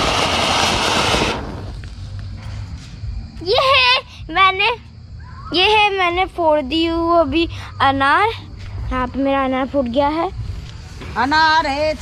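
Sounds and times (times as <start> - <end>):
firework fountain hissing: 0.0 - 2.0.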